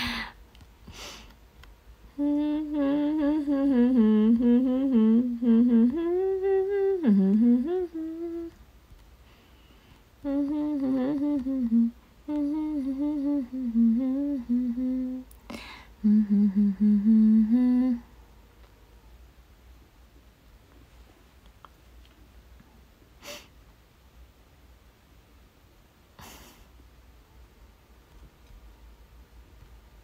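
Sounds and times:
woman humming a tune: 2.1s - 8.6s, 10.2s - 18.1s.

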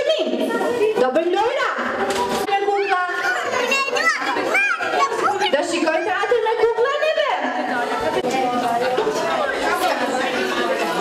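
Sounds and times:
general chatter: 0.0s - 11.0s
small children calling out: 2.7s - 6.0s.

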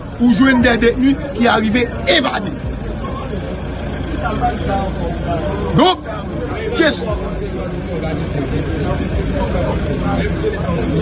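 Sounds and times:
faint background voices: 0.0s - 11.0s
low rumble of road traffic: 0.0s - 11.0s
man's voice loud: 0.2s - 2.6s, 5.7s - 7.4s.

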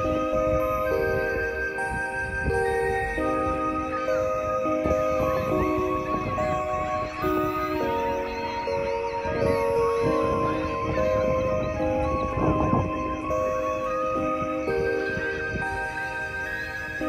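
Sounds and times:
soft music of held chords: 0.0s - 17.0s.

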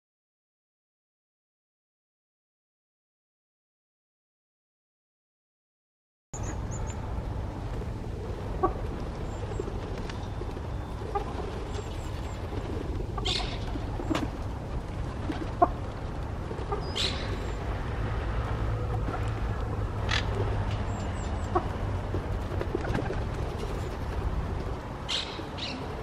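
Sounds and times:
soft bird calls: 6.4s - 7.1s, 7.8s - 14.5s, 15.1s - 17.8s, 18.8s - 21.8s, 22.6s - 26.0s
steady low rumble: 6.4s - 26.0s.

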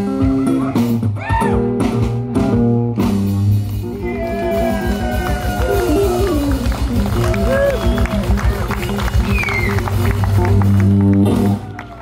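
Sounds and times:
fast steady drum beat: 3.0s - 11.7s.

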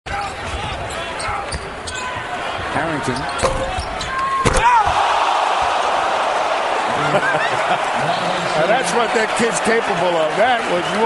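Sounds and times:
arena voices: 4.0s - 11.0s.

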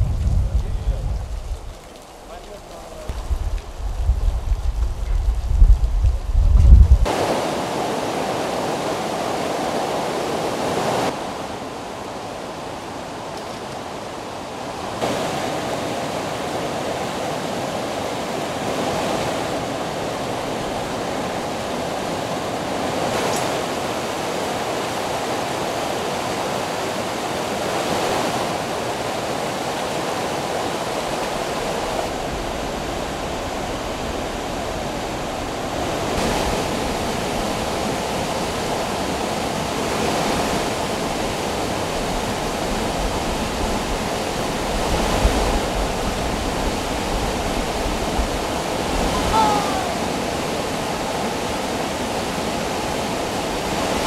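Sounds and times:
deep rumble: 0.0s - 1.8s, 3.1s - 7.1s
river water rushing over boulders: 7.0s - 54.0s.

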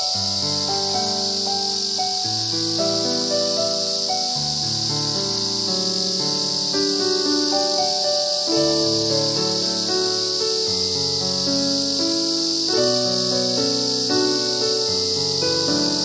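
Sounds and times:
high-pitched insect drone: 0.0s - 16.0s
instrumental background music: 0.0s - 16.0s.

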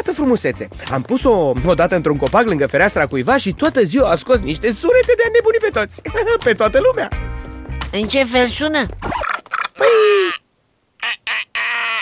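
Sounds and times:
cartoon bird calls: 11.0s - 12.0s.

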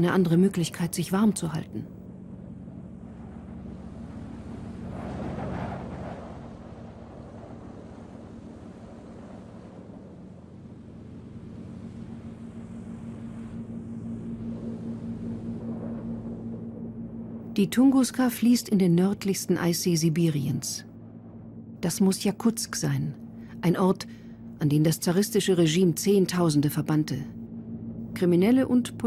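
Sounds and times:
airship engines droning: 0.0s - 29.0s.

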